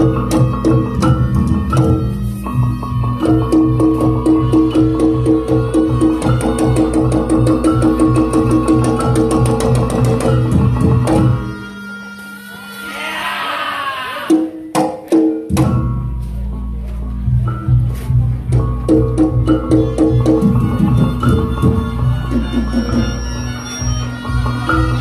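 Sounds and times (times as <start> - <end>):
gamelan drums and gong-chimes: 0.0 - 13.5, 14.3 - 25.0
wavering high tone: 11.1 - 13.9, 19.6 - 25.0.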